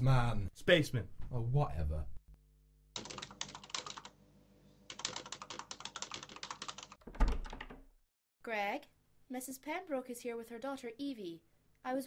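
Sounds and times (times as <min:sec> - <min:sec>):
rapid typing on keyboard: 0:03.0 - 0:04.2, 0:04.9 - 0:07.8.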